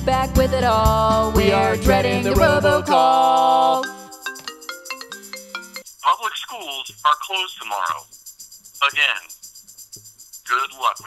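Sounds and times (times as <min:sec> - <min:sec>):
marimba phone ringtone: 0:03.5 - 0:05.9
recorded voice through phone speaker: 0:06.1 - 0:08.0, 0:08.8 - 0:09.3, 0:10.5 - 0:11.0.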